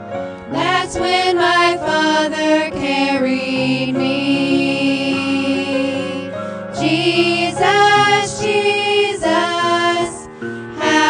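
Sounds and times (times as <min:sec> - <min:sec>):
women singing gospel in harmony: 0:00.5 - 0:11.0.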